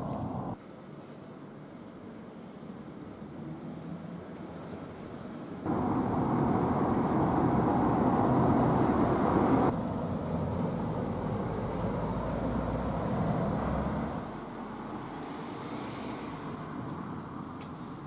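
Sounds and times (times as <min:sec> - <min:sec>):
motor vehicle passing: 0:05.6 - 0:16.5.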